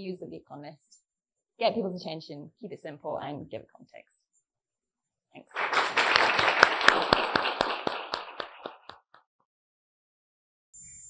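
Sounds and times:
audience applause: 0:05.5 - 0:09.0.

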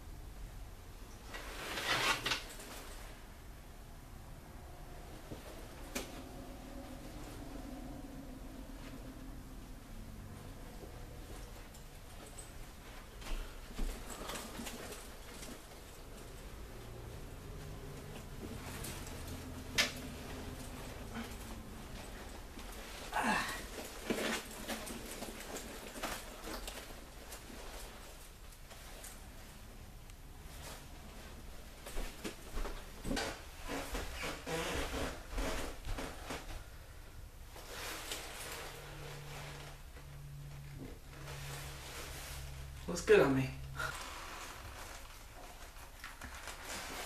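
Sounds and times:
low steady hum: 0:00.0 - 0:47.0
jacket fabric rustling: 0:01.0 - 0:03.6, 0:05.1 - 0:47.0.

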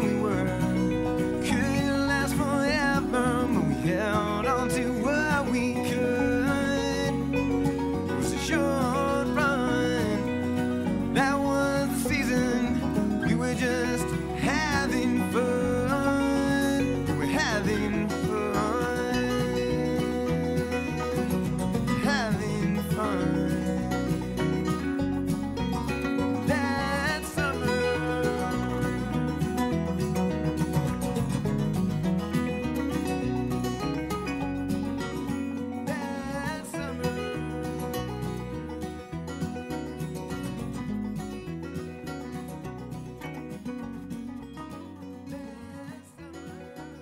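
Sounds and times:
strummed acoustic guitar: 0:00.0 - 0:47.0
wordless singing: 0:08.1 - 0:21.4, 0:26.3 - 0:29.6, 0:35.9 - 0:38.0.

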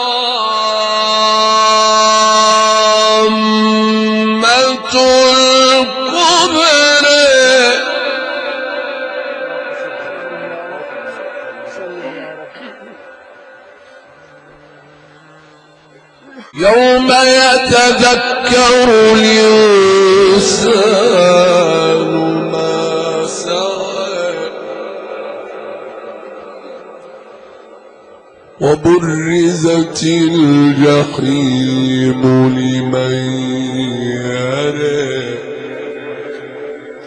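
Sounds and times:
man chanting melodically: 0:00.0 - 0:37.0.

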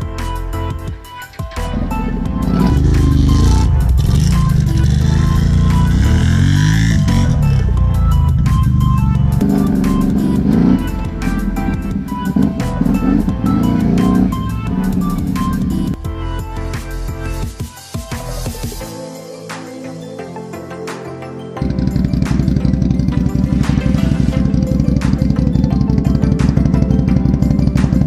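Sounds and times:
electronic music with steady beat: 0:00.0 - 0:28.0
atv engine revving: 0:01.5 - 0:16.0, 0:21.6 - 0:28.0.

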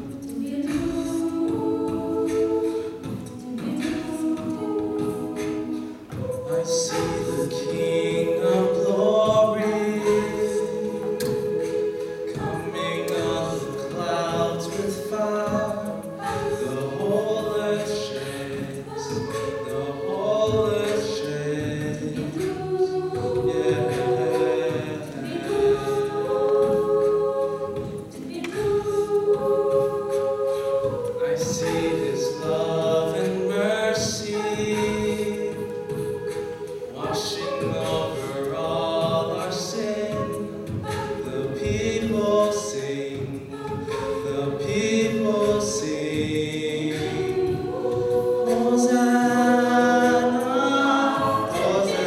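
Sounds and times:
a cappella choir singing chords: 0:00.0 - 0:52.0.

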